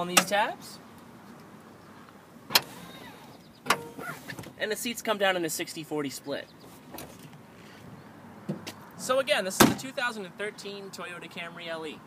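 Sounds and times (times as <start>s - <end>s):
seatback latches clunking: 2.5s - 4.6s.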